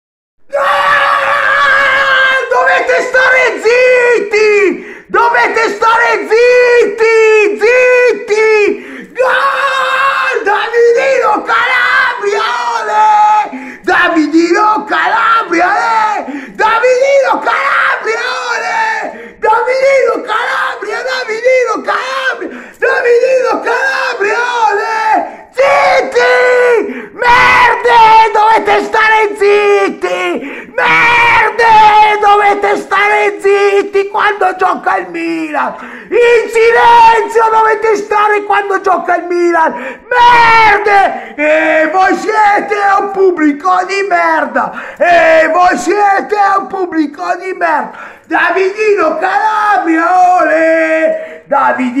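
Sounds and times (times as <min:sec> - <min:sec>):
man yelling: 0:00.5 - 0:52.0
man shouting a chant: 0:00.8 - 0:52.0.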